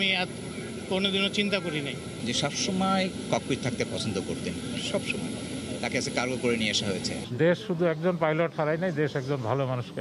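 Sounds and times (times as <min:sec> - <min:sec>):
steady engine hum: 0:00.0 - 0:10.0
man speaking: 0:00.9 - 0:10.0.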